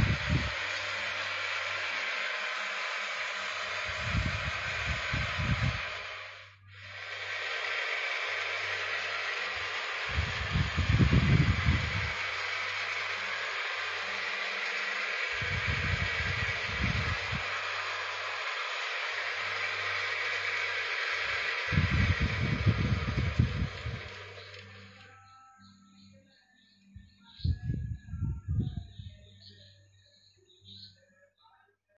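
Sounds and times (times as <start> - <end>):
wood lathe hissing: 0.0 - 25.2.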